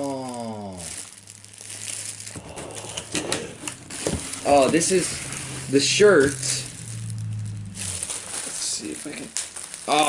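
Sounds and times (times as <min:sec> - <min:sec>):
packaging crinkling and rustling: 0:00.0 - 0:10.0.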